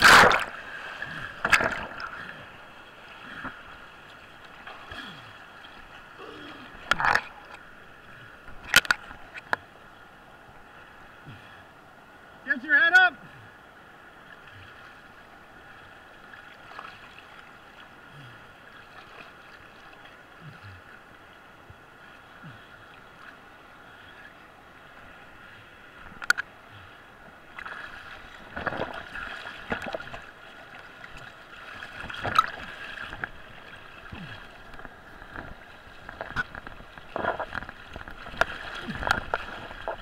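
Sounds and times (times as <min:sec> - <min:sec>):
sharp water splashes: 0:00.0 - 0:02.2
whitewater splashing and gurgling: 0:00.0 - 0:40.0.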